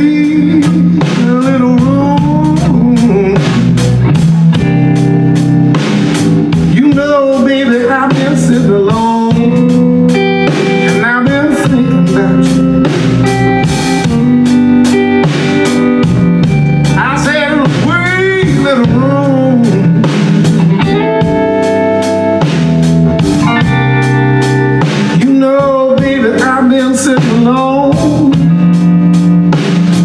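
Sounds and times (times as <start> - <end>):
man singing: 0.0 - 4.0, 6.6 - 13.4, 16.8 - 20.8, 24.8 - 28.8
bass guitar: 0.0 - 30.0
drum kit: 0.0 - 30.0
electric guitar: 0.0 - 30.0.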